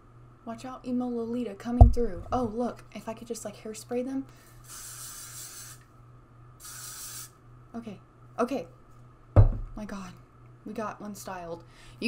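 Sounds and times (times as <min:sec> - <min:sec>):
aerosol can spraying: 0:04.6 - 0:05.8, 0:06.6 - 0:07.3.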